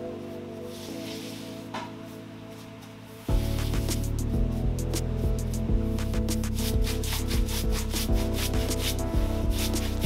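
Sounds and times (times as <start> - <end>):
background music with steady beat: 0.0 - 10.0
stiff paintbrush scratching wood: 6.3 - 10.0.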